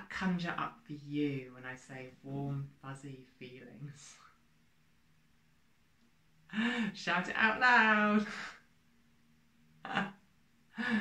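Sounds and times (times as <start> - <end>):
woman laughing breathily: 10.7 - 11.0.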